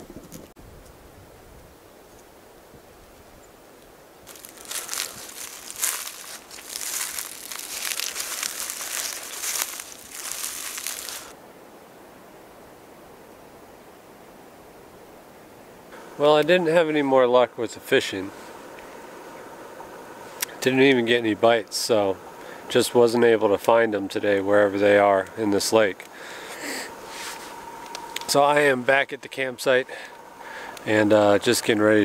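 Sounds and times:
dry leaves rustling and crunching: 4.2s - 11.4s.

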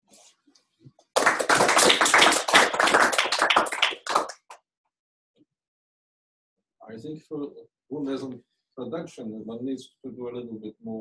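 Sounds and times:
audience applauding: 1.1s - 4.6s.

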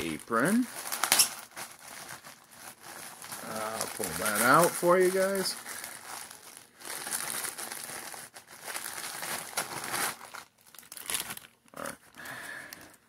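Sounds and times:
plastic wrapping crinkling: 0.0s - 13.0s.

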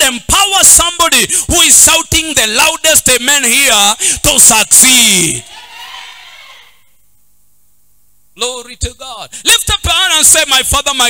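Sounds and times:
steady low hum: 7.0s - 9.5s.

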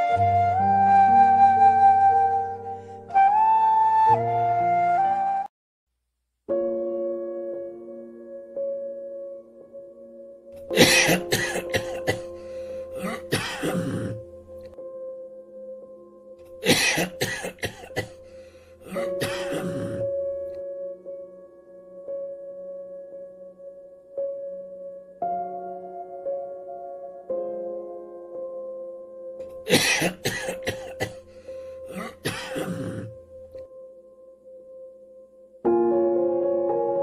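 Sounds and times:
person coughing: 10.7s - 14.2s, 16.6s - 18.2s, 18.9s - 20.1s, 29.6s - 31.2s, 31.9s - 33.2s.

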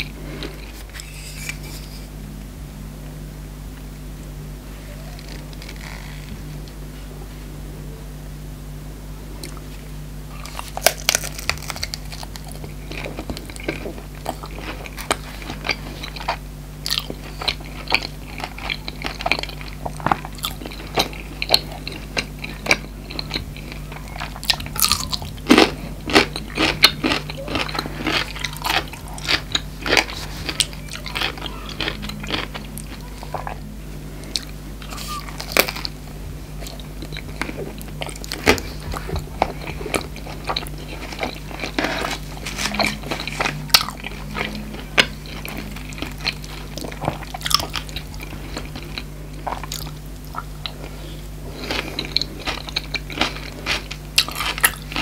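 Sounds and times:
crunching and chewing: 0.0s - 2.0s, 5.1s - 6.8s, 9.4s - 55.0s
steady low hum: 0.0s - 55.0s.

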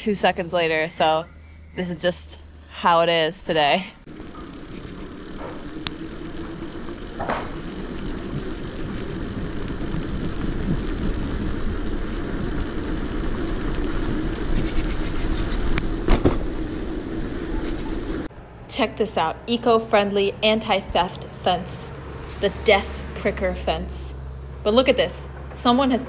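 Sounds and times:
low hum: 0.0s - 26.0s
tyre and wind noise: 4.1s - 18.3s.

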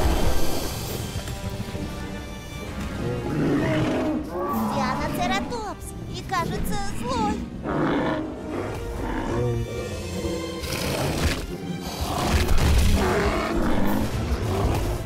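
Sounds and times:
film music: 0.0s - 15.0s
dinosaur roars and growls: 7.6s - 15.0s.

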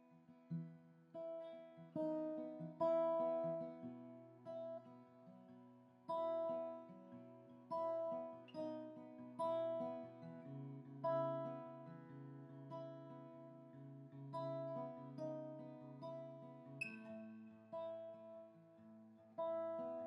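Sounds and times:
acoustic guitar picking: 0.0s - 20.0s.

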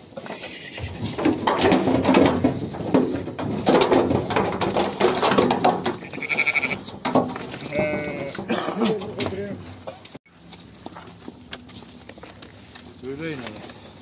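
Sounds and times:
sheep bleating: 6.0s - 6.9s, 7.6s - 8.5s.

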